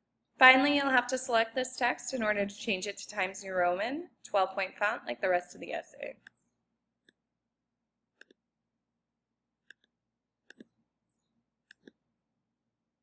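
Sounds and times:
computer mouse clicks: 8.2 - 8.4, 9.6 - 10.7, 11.6 - 12.0.

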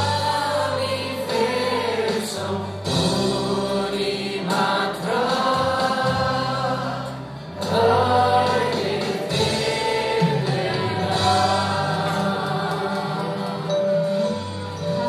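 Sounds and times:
acoustic guitar: 0.0 - 15.0
people singing together: 0.0 - 15.0.

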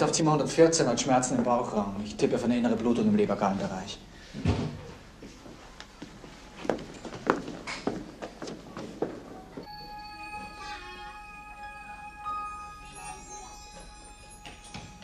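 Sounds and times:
background music with held tones: 9.6 - 15.0.

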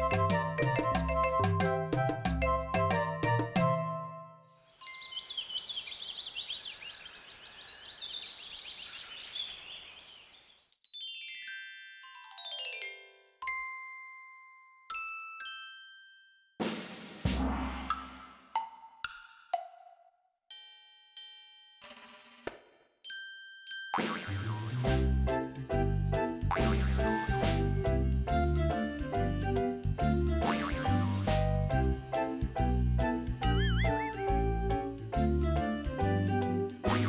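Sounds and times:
small birds chirping: 4.5 - 10.9.

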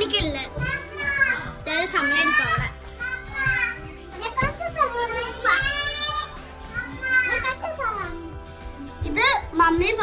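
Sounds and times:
child's sing-song calls: 0.6 - 8.3.

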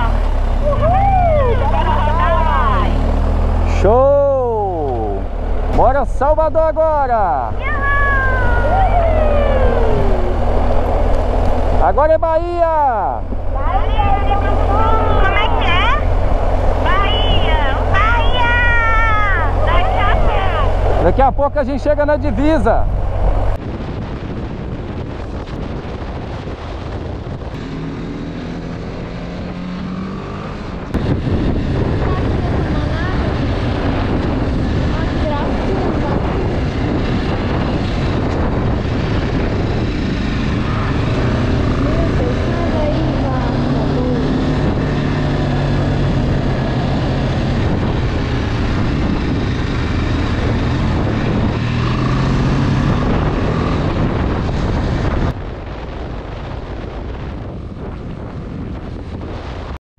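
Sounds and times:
wind buffeting microphone: 0.0 - 59.8
motorcycle engine running: 27.4 - 55.2.

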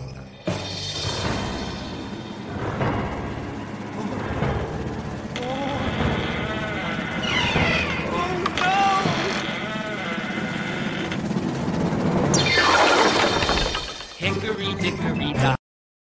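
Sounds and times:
hissing crash-like sweep: 0.5 - 2.8, 12.3 - 14.2
warbling voice-like cries: 5.3 - 11.2.

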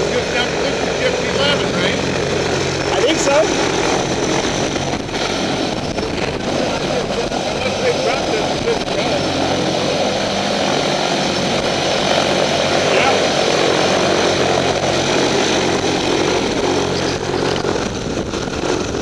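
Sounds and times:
propeller aircraft engine drone: 0.0 - 19.0.

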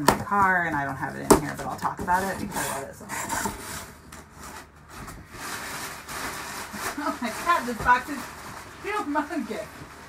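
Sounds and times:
cardboard scraping and rustling: 0.2 - 10.0.

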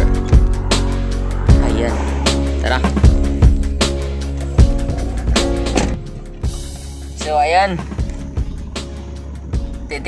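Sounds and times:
background music with drums: 0.0 - 10.0.

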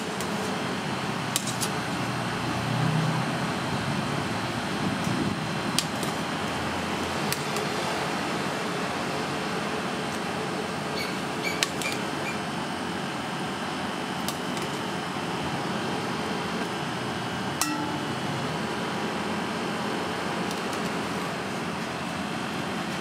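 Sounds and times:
ventilation noise: 0.0 - 23.0.

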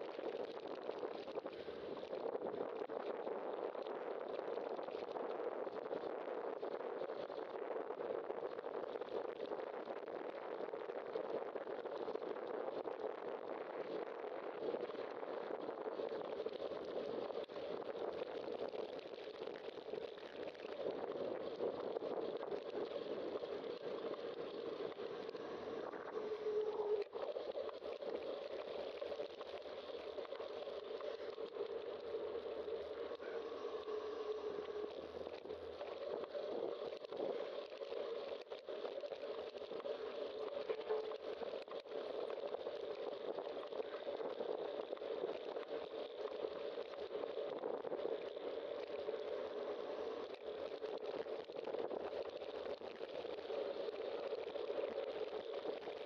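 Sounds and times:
wind noise on microphone: 0.0 - 56.0
steady mid-pitched tone: 22.3 - 42.2.

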